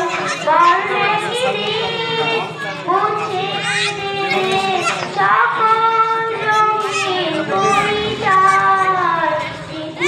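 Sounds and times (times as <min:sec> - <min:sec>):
girl singing into a microphone: 0:00.0 - 0:10.0.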